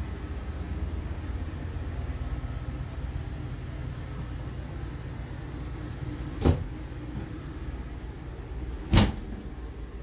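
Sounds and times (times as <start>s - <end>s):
steady low hum: 0.0s - 10.0s
wooden cabinet doors shutting: 6.4s - 7.4s, 8.8s - 9.5s.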